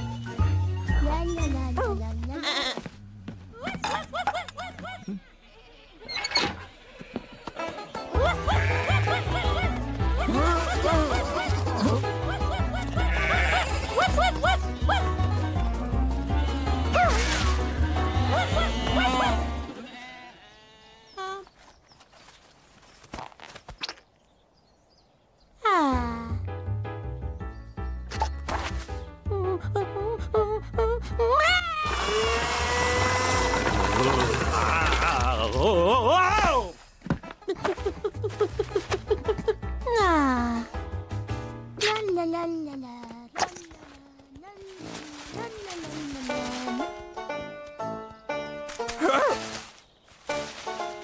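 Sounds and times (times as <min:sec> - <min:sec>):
cartoon sheep bleat: 0:08.2 - 0:09.3, 0:13.0 - 0:14.1, 0:16.3 - 0:21.3.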